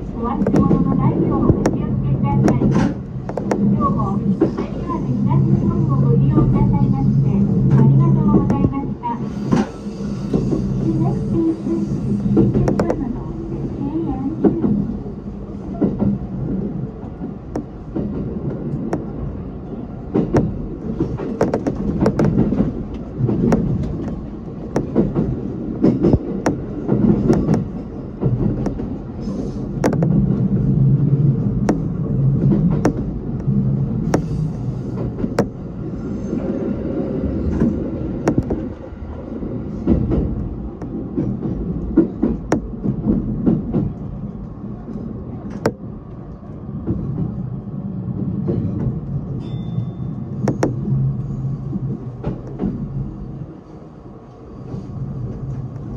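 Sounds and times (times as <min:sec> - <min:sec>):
train running rumble: 0:00.0 - 0:55.9
wheels clicking over track: 0:20.1 - 0:29.1.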